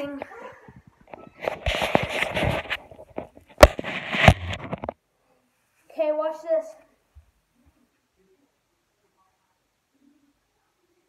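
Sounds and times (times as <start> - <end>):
phone being handled: 1.1 - 5.0.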